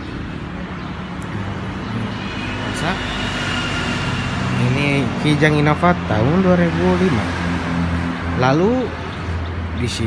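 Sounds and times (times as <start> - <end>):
low vehicle engine and traffic: 0.0 - 10.0.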